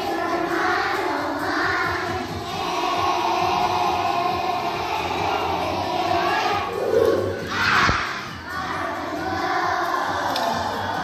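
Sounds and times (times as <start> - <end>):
children singing in unison: 0.0 - 11.0.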